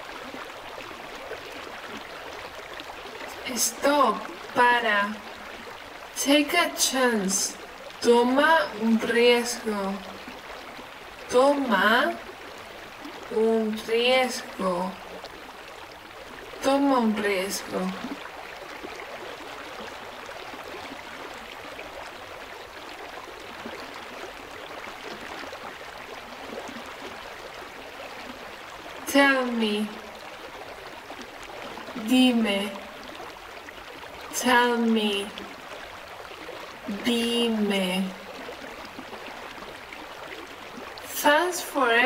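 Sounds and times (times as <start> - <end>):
stream flowing: 0.0 - 42.0.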